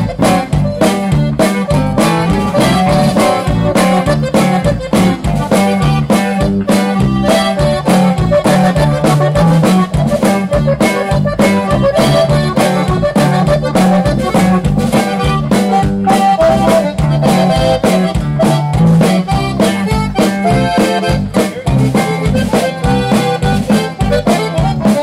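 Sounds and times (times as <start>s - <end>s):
button accordion melody: 0.0s - 25.0s
electric bass: 0.0s - 25.0s
steady fast beat: 0.0s - 25.0s.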